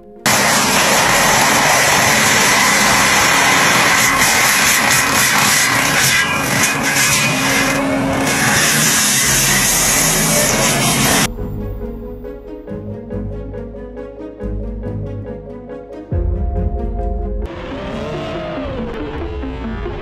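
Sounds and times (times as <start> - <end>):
forestry mulcher grinding trees: 0.2 - 11.3.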